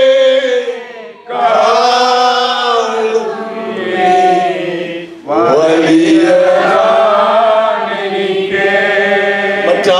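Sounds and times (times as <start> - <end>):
man singing a worship song: 0.0 - 0.8, 1.4 - 7.7, 8.8 - 9.9.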